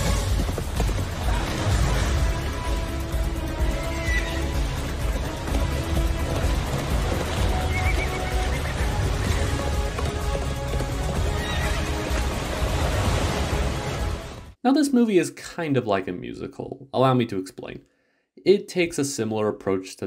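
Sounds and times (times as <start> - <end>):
orchestral film score: 0.0 - 14.6
horse whinnying: 3.6 - 4.8, 7.4 - 10.0, 11.0 - 12.2.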